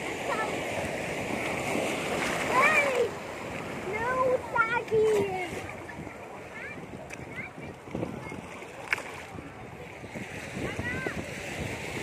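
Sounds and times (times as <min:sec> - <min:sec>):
shallow sea water splashing: 0:00.0 - 0:12.0.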